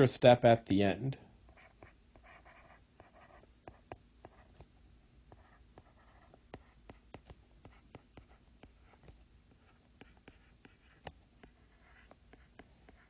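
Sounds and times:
stylus writing on tablet screen: 0:01.5 - 0:13.0.

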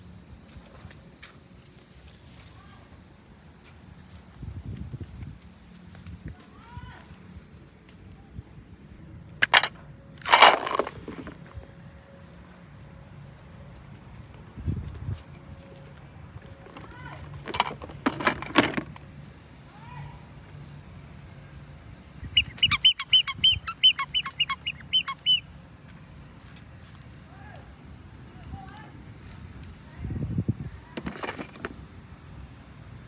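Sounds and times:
plastic toy containers clattering: 0:09.4 - 0:11.4, 0:16.6 - 0:19.0
rubber toy squeaking: 0:22.2 - 0:25.5.

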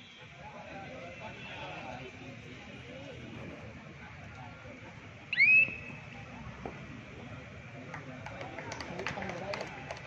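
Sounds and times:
crowd murmur: 0:00.0 - 0:10.0
high swooping whistle: 0:05.3 - 0:06.0.

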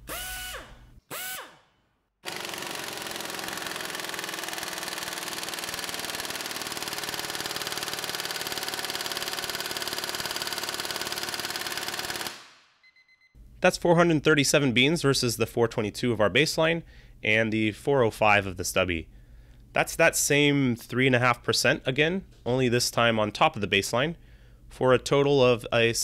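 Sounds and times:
impact wrench free-spinning blips: 0:00.0 - 0:13.3
impact wrench hammering: 0:02.2 - 0:12.6.

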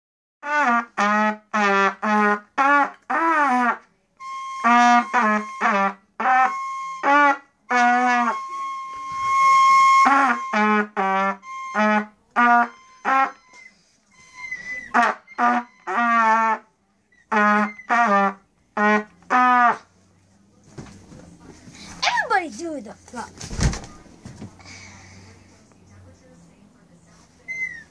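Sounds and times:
trumpet short notes: 0:00.4 - 0:16.7.

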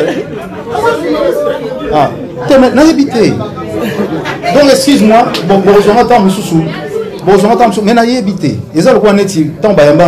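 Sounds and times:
man speaking into a microphone: 0:01.0 - 0:03.6, 0:04.4 - 0:10.0.

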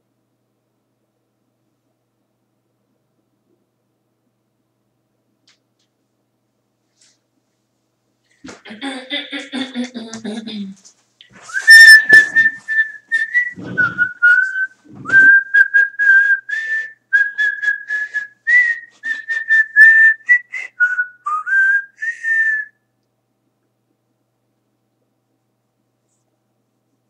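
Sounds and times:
person whistling a tune: 0:11.5 - 0:22.8
quick breaths: 0:16.5 - 0:17.0.

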